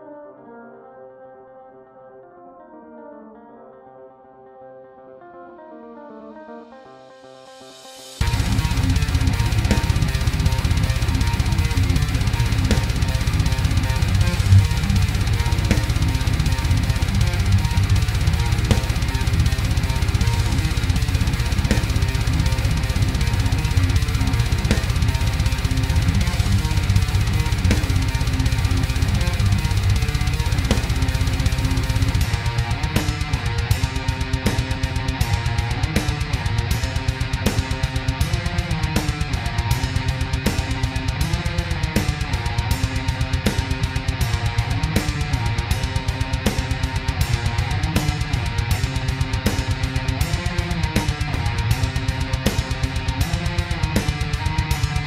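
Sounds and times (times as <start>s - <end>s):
distorted electric guitars: 6.4s - 55.0s
drum kit: 8.2s - 55.0s.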